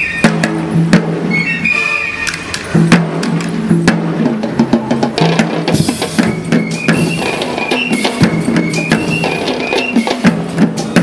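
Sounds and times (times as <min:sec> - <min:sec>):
drums beating fast rhythm: 0:00.0 - 0:01.7, 0:02.6 - 0:11.0
repeated high note: 0:01.3 - 0:02.5.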